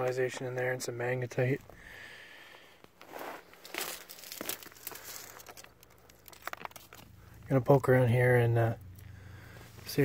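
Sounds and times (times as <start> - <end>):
rustling and crunching on rocks: 2.5 - 7.2
small clicks and crackles: 3.5 - 7.8.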